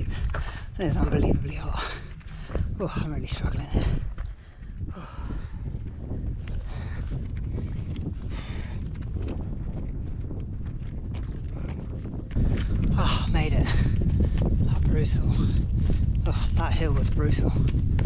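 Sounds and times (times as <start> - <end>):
heavy breathing: 0.0 - 0.8, 3.7 - 5.9, 6.5 - 8.9
footsteps on track: 0.0 - 18.0
wind buffeting microphone: 0.0 - 18.0.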